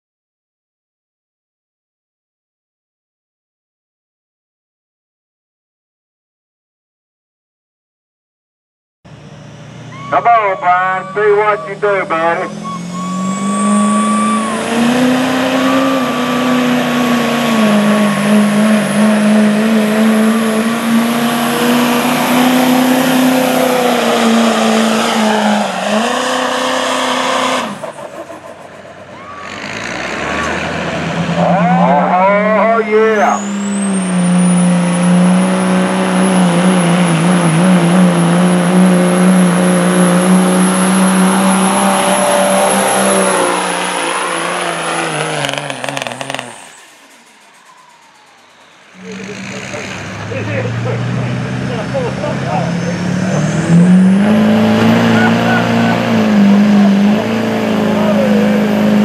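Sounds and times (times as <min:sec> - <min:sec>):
high turbo whistle: 0:09.1 - 0:31.7, 0:40.2 - 0:50.2
diesel truck engine at full throttle: 0:09.1 - 0:59.0.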